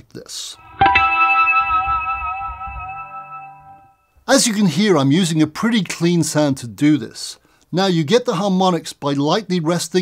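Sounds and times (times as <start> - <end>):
electric guitar harmonics with vibrato: 0.6 - 3.9.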